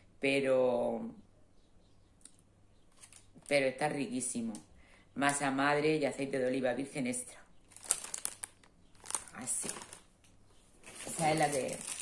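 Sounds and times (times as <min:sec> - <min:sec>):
plastic bag clicks: 0:07.7 - 0:10.0.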